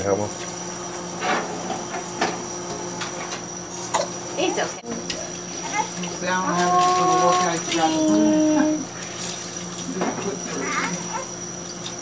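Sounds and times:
faucet water running into sink: 4.9 - 12.0.

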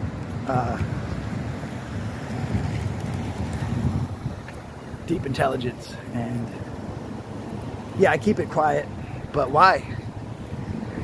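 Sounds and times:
passing street traffic: 0.0 - 11.0
wind buffeting microphone: 0.0 - 11.0.

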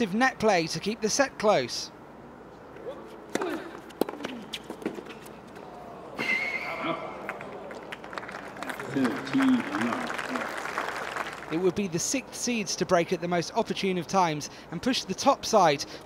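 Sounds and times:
crowd applauding: 7.0 - 11.7.

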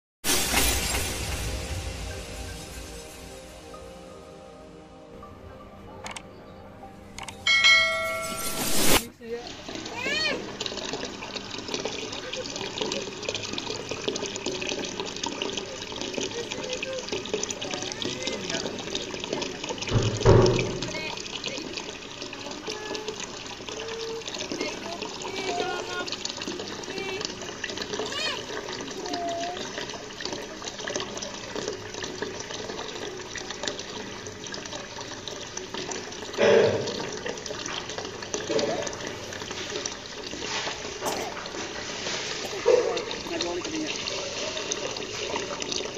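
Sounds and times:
glass shattering: 0.3 - 1.7, 7.5 - 9.0
music: 0.7 - 9.0
water trickling into pond: 6.0 - 45.9
loud thump: 19.9 - 21.0.

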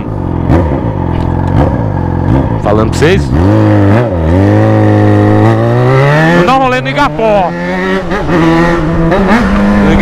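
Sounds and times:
motorcycle engine running: 0.0 - 10.0.

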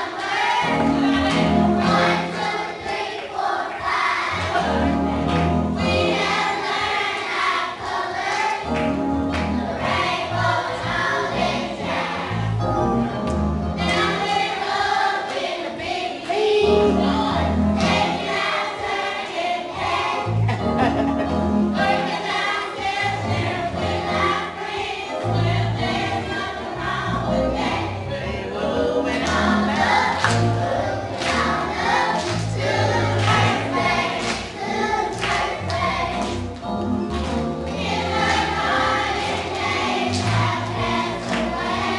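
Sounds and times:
choir singing: 0.0 - 12.7, 13.8 - 21.1, 21.7 - 41.9.

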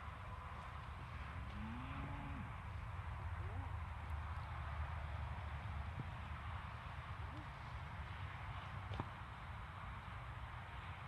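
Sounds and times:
cow mooing: 1.6 - 2.5.

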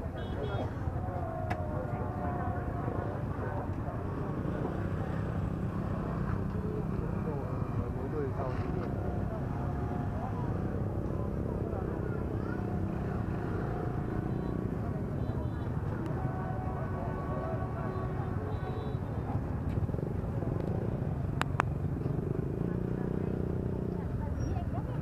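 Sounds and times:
crowd chattering: 0.0 - 25.0.

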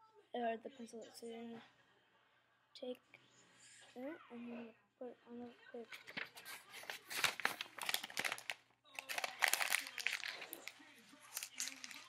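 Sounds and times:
paper crinkling and rustling: 5.9 - 12.0.

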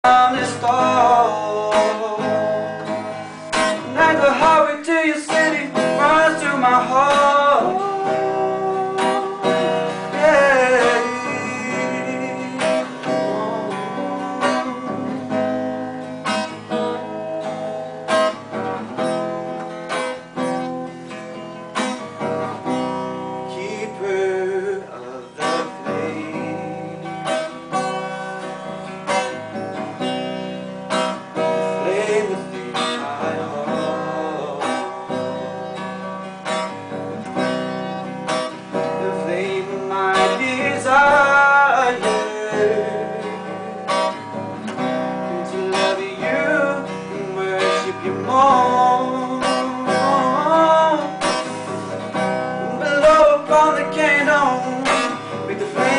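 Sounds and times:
man singing: 0.0 - 15.8, 23.2 - 27.5, 31.4 - 35.5, 38.5 - 55.9
acoustic guitar strumming: 0.0 - 55.9.

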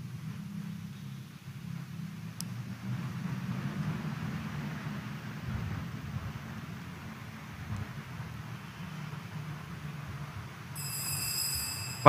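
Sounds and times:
low rumble and hiss of church: 0.0 - 12.0.

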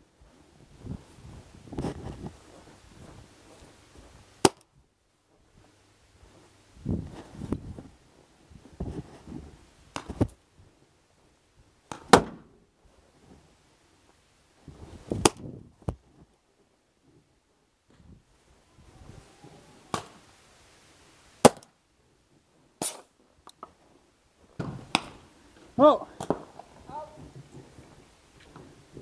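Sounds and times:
rustling of movement: 0.0 - 29.0
paintball pistol shots: 11.9 - 12.4, 21.4 - 21.7, 22.8 - 23.1.

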